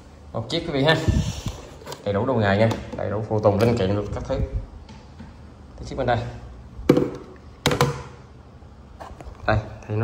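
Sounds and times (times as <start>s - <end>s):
sharp knocks: 6.9s - 8.2s.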